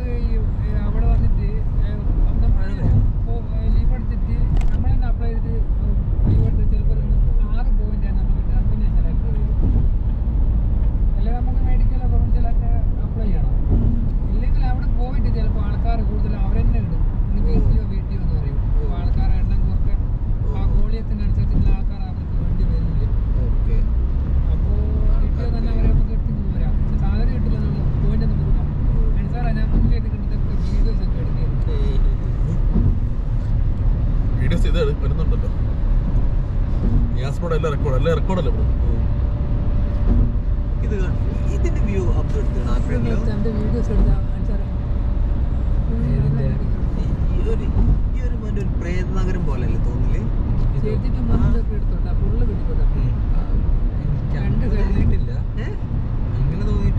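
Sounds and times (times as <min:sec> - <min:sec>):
road and tyre rumble: 0:00.0 - 0:56.9.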